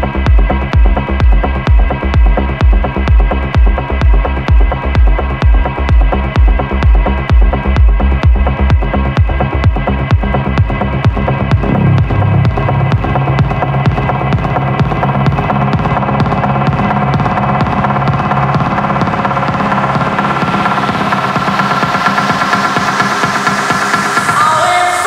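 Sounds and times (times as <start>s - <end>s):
bassline: 0.0s - 24.1s
rising noise sweep: 11.6s - 14.0s.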